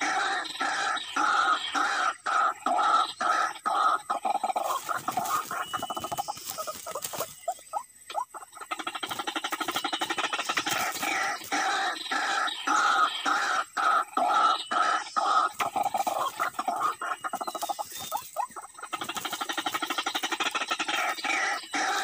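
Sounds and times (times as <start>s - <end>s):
bird calling harsh notes: 0.0s - 22.0s.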